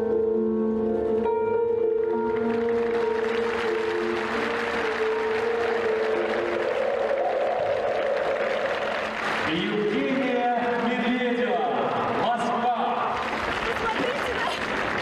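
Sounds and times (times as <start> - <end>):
program music with held notes: 0.0 - 9.9
other music: 0.0 - 10.1
crowd applause and cheering: 2.0 - 15.0.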